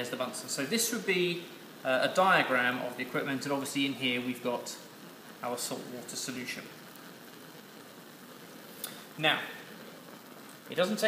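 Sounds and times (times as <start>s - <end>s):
gas burner hissing: 0.0s - 11.0s.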